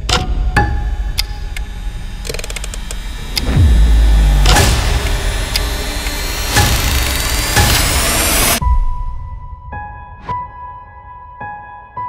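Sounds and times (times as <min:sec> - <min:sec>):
rapid clicks: 0:00.0 - 0:08.6
deep boom dropping in pitch: 0:03.4 - 0:07.6.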